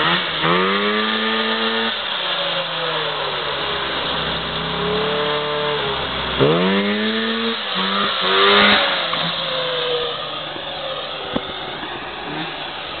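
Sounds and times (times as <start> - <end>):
engine running at high revs: 0.0 - 13.0.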